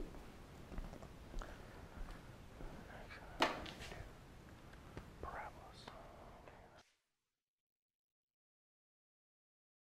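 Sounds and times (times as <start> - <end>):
faint room noise: 0.0 - 7.1
soft whisper-like sound: 1.3 - 7.0.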